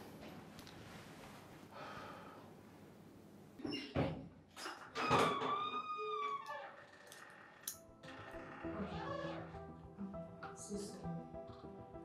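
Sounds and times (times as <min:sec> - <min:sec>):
door hinge creaking: 0:04.6 - 0:09.6.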